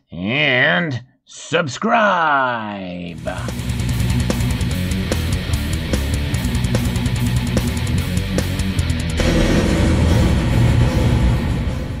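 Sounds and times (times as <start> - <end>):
heavy metal electric guitar chord: 3.2 - 12.0.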